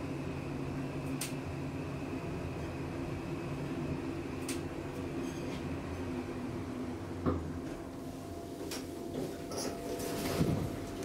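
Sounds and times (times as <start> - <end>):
elevator low hum: 0.0 - 11.0
elevator doors sliding open: 9.4 - 11.0.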